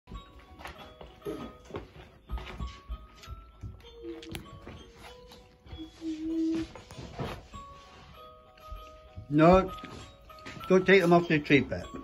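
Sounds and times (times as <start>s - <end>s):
simple electronic melody: 0.1s - 12.0s.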